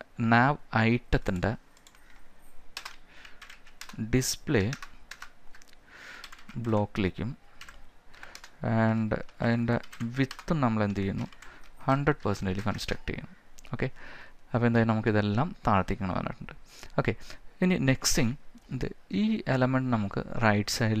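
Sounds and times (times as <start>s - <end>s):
keyboard typing clicks: 1.3s - 2.2s, 2.8s - 4.0s, 4.6s - 6.9s, 7.6s - 8.6s, 9.2s - 11.8s.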